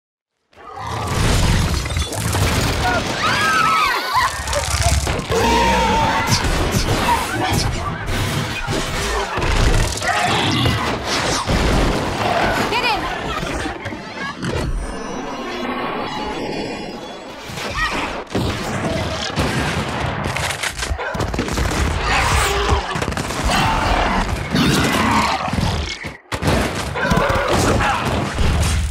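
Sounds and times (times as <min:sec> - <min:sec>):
debris shattering: 0:00.9 - 0:07.3.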